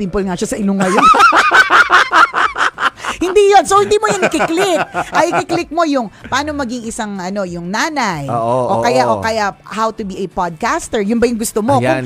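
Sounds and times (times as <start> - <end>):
person cackling laughter: 0.8 - 5.6.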